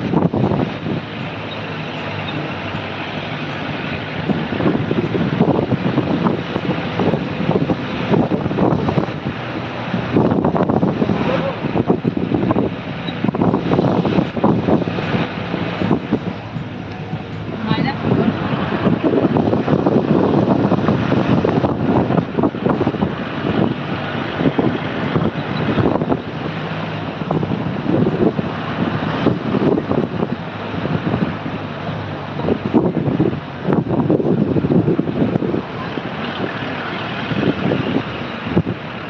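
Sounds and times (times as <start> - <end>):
vehicle engine and road noise: 0.0 - 39.0
wind buffeting microphone: 0.0 - 39.0.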